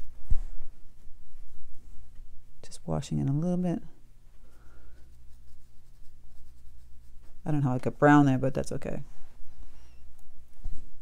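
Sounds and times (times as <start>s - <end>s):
steady low hum: 0.0s - 11.0s
paintbrush strokes on paper: 4.4s - 8.0s.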